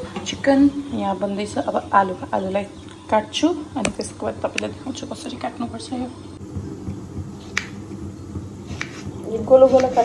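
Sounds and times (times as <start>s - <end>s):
knife slicing potato on board: 8.7s - 10.0s.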